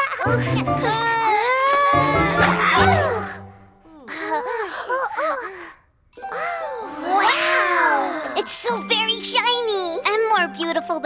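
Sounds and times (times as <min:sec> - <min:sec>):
soundtrack music: 0:00.3 - 0:03.8
high-pitched cartoon voices: 0:06.2 - 0:09.8.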